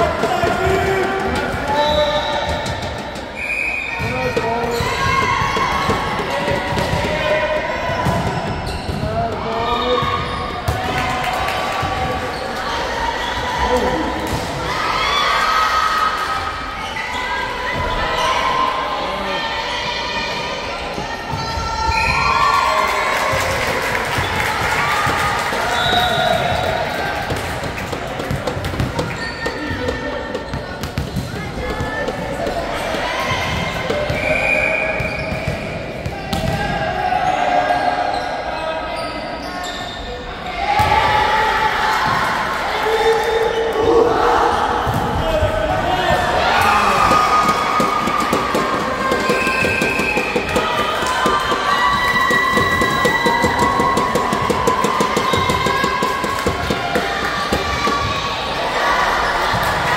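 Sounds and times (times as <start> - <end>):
players shouting: 40.5 - 59.9.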